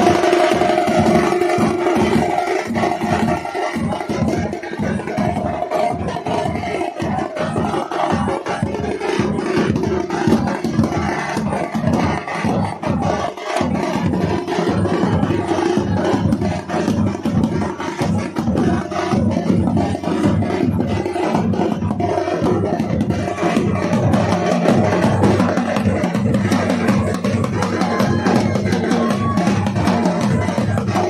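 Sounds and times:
fast street drumming: 0.0s - 31.0s.

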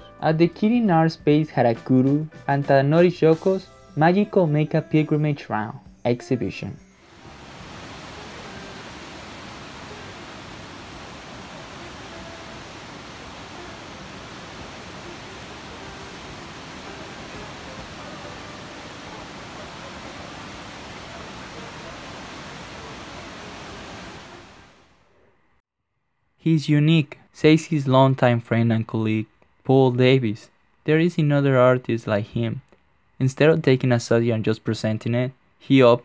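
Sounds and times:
turbulent water rushing: 7.1s - 24.9s.

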